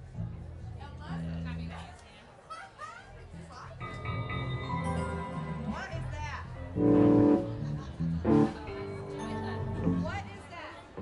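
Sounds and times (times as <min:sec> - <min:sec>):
electric keyboard chords: 0:06.6 - 0:10.2.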